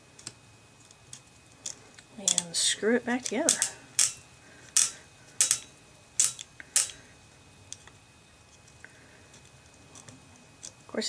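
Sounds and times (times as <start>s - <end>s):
pistol parts clicking: 1.1s - 2.5s, 3.2s - 7.0s
metal parts scraping: 1.1s - 7.0s.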